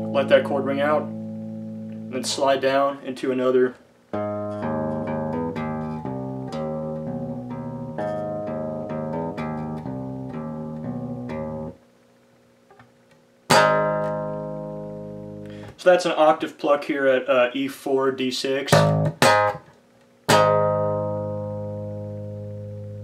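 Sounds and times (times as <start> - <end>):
electric bass fingered notes: 0.0 - 2.6, 4.1 - 11.8, 13.5 - 15.8, 18.7 - 19.7, 20.3 - 23.0
strummed bass chord ringing: 0.0 - 2.8, 4.1 - 11.8, 13.5 - 15.7, 18.7 - 19.7, 20.3 - 23.0.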